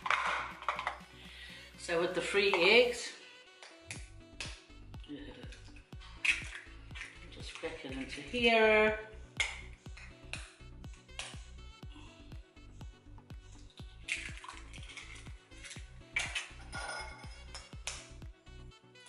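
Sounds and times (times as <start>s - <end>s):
background music with bass: 0.0s - 19.0s
eggs cracking on plastic rim: 5.6s - 7.2s.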